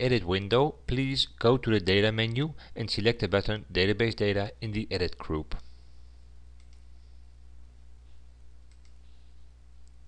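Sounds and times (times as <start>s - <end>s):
low electrical hum: 0.0s - 10.0s
computer mouse clicks: 6.6s - 6.9s, 8.6s - 9.1s.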